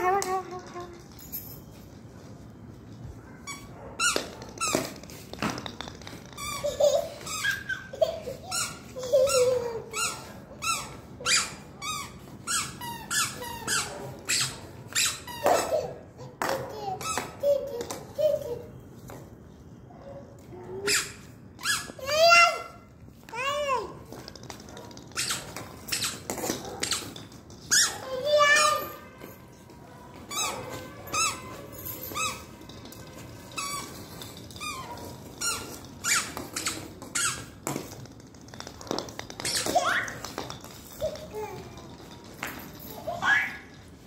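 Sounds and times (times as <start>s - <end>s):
squeaky shoes squeaking: 0.0s - 19.5s, 20.9s - 22.8s, 23.4s - 44.0s.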